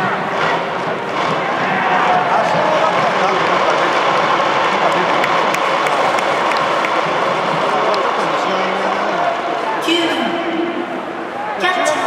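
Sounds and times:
crowd clapping: 0.4 - 9.4.

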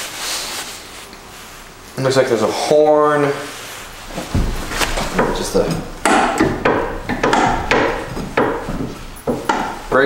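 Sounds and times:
brake linkage knocking and creaking: 4.3 - 10.0.

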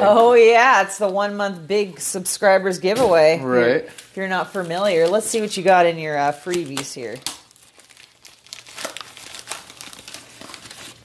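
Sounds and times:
envelope crinkling and rustling: 4.0 - 11.0.

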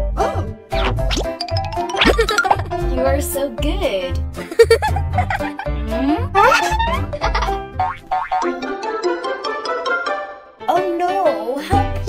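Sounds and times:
upbeat children's music: 0.1 - 12.0
springy cartoon sound effect: 0.8 - 2.8, 6.4 - 8.7.

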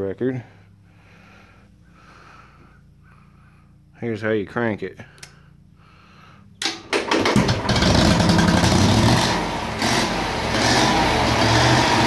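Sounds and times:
soft breaths: 0.3 - 4.0, 5.0 - 6.6.

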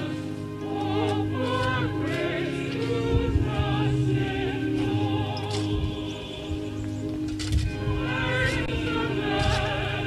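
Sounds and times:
sustained accompaniment: 0.0 - 10.0
voices singing a hymn: 0.0 - 10.0.

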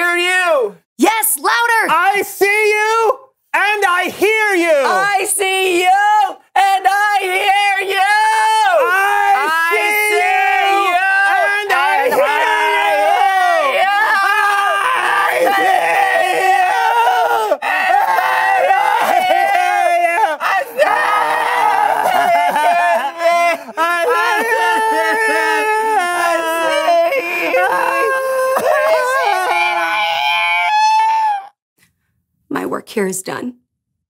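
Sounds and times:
men yelling: 1.7 - 31.6
men wailing: 3.8 - 31.6.

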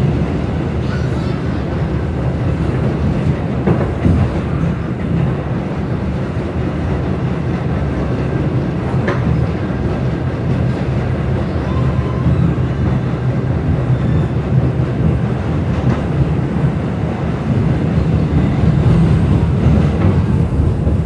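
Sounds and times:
subway train wheels rumbling: 0.0 - 21.0.

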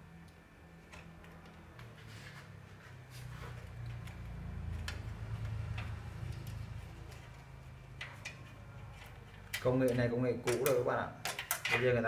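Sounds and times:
low steady hum: 0.0 - 12.0
light clicks of handled parts: 3.8 - 12.0.

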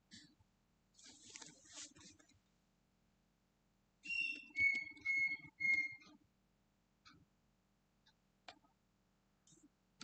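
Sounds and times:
whistled call: 4.0 - 6.0.

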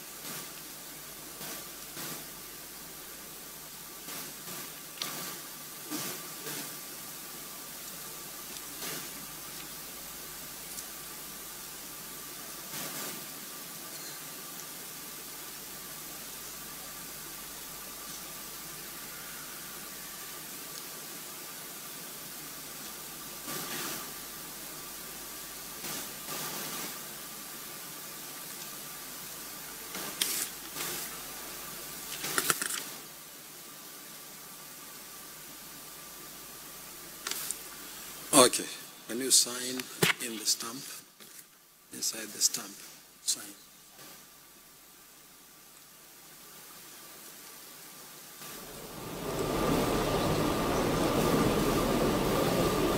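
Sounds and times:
faint steady tone: 0.0 - 32.3, 32.9 - 52.9
microphone hiss: 0.0 - 52.9.

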